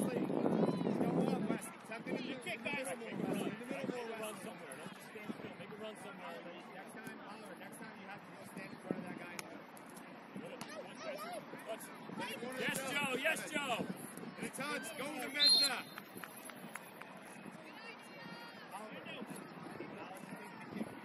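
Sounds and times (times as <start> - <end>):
people calling and chattering: 0.0 - 21.0.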